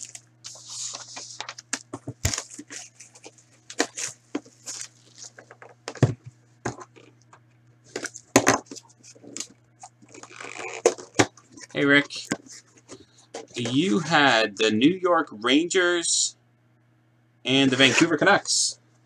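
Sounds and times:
faint low hum: 0.0s - 19.0s.

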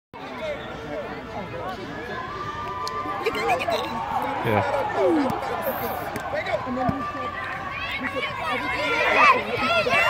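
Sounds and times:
people and children chattering: 0.2s - 10.0s.

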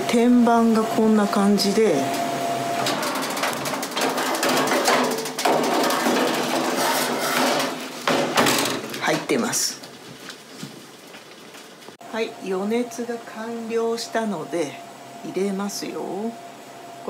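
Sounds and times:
oven fan and burner rushing: 0.0s - 17.0s
oven door shutting: 1.9s - 9.6s
metal baking tray clicks and knocks: 2.8s - 9.3s.

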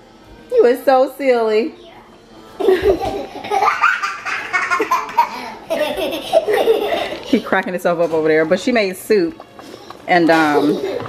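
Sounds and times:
toddler laughing: 2.6s - 7.4s.

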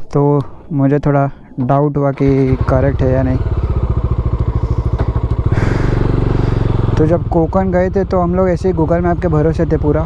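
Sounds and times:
motorcycle engine running: 2.1s - 10.0s.

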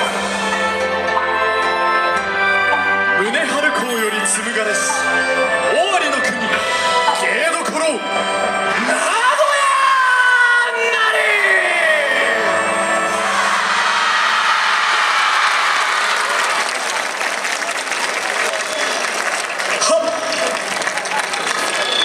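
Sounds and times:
audience applauding and cheering: 13.1s - 22.0s.

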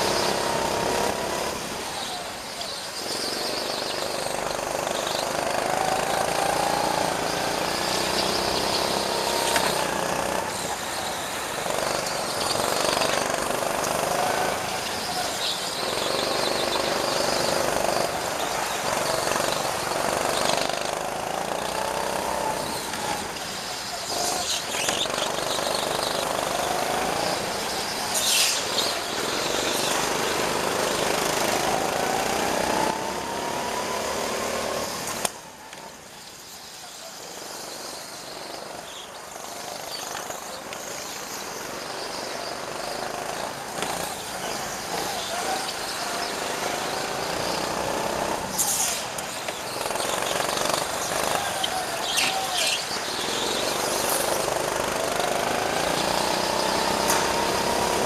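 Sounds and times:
go-kart engine accelerating: 0.0s - 58.0s.

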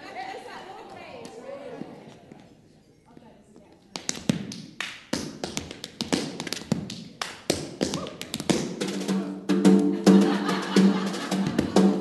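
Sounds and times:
tap shoes clicking on stage floor: 3.6s - 9.1s.

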